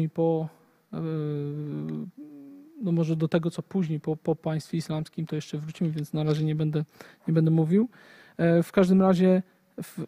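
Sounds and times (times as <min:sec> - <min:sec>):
man speaking: 0:00.0 - 0:10.0
man humming softly: 0:01.0 - 0:02.9.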